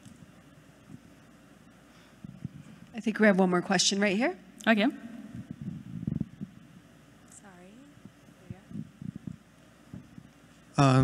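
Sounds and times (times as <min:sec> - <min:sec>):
microphone handling noise: 0:00.0 - 0:01.2, 0:02.2 - 0:02.9, 0:05.2 - 0:10.6.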